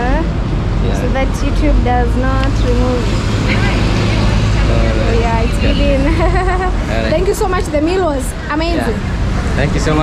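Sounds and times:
bus engine: 0.0s - 10.0s
people talking nearby: 0.0s - 10.0s
road traffic rumble: 0.0s - 10.0s.

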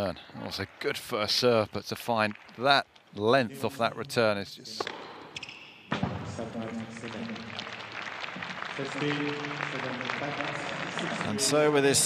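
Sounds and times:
tennis ball struck: 4.8s - 6.2s
crowd applauding and cheering: 6.4s - 12.0s.

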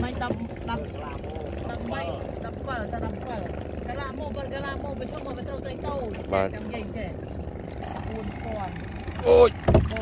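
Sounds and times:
low engine hum: 0.0s - 10.0s.

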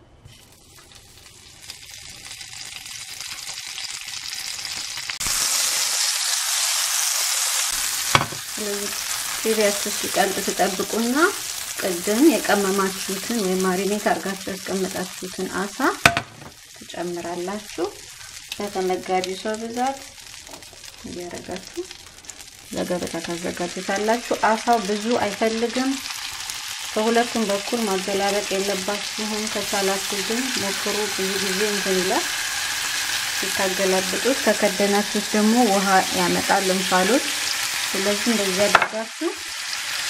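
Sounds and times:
hot fat sizzling in a frying pan: 0.2s - 40.0s.

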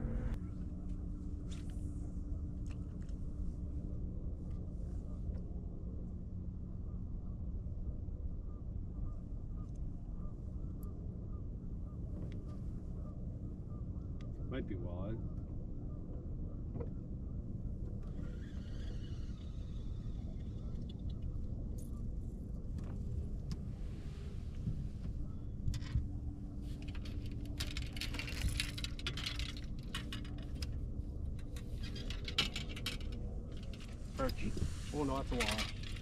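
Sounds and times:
low rumble: 0.0s - 36.0s
fishing tackle clicking and rattling: 26.8s - 30.8s, 31.4s - 34.0s.

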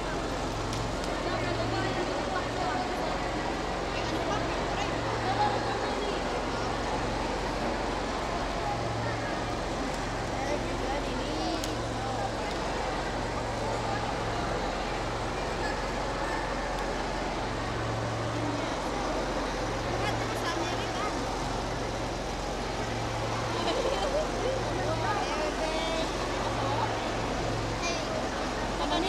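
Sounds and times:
crowd babble: 0.0s - 29.0s.

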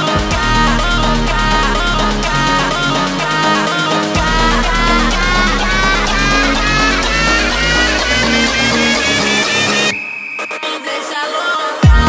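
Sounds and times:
electronic house music: 0.0s - 12.0s.

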